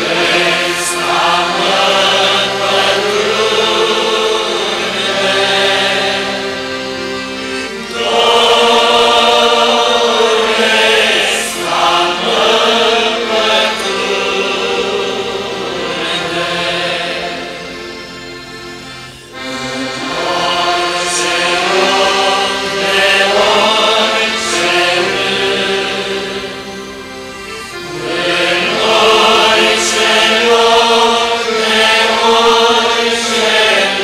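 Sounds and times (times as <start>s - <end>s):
choir singing a hymn: 0.0s - 34.0s.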